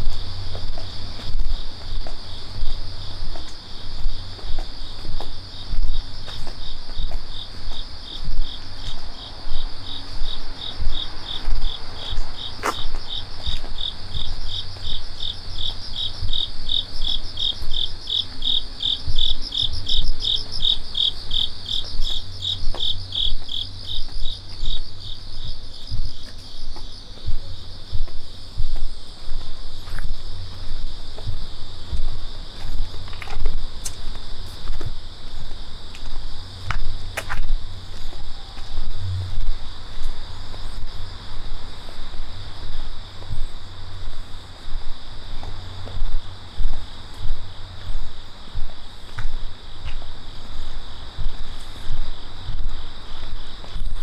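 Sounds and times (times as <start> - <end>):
footsteps thudding: 0.0 - 41.0
insects chirping: 0.0 - 54.0.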